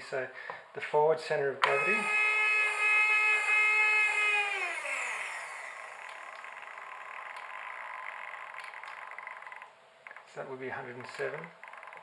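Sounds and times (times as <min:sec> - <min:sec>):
servo motor whining: 0:01.6 - 0:09.4.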